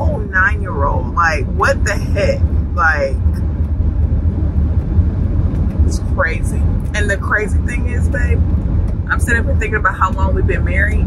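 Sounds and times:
car cabin road and engine rumble: 0.0s - 11.0s.

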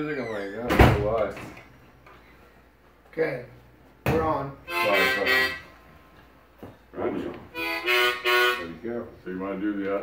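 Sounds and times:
harmonica chords: 4.5s - 5.9s, 7.0s - 9.2s.

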